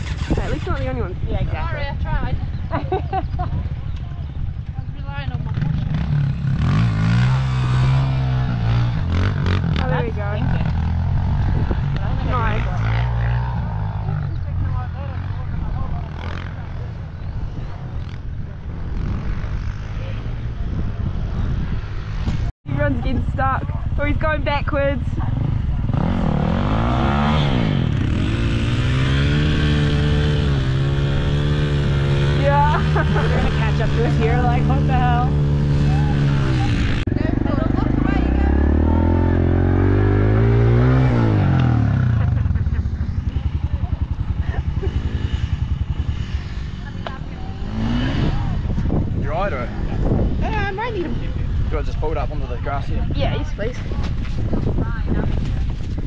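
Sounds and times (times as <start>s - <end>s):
motorbike engines idling and revving: 0.0s - 56.0s.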